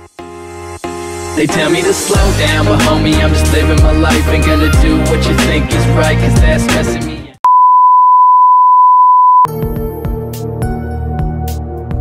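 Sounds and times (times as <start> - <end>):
rapping over hip-hop music: 1.4 - 7.3
steady electronic beep: 7.5 - 9.5.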